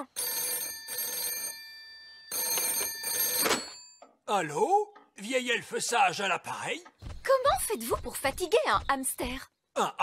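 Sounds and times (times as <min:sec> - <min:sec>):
telephone bell ringing: 0:00.0 - 0:04.2.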